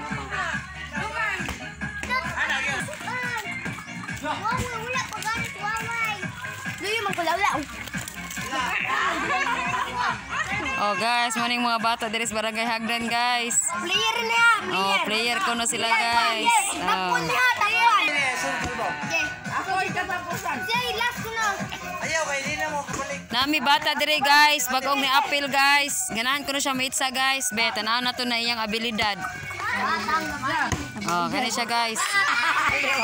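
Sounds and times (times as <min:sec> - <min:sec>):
children calling and chattering: 0:00.0 - 0:33.0.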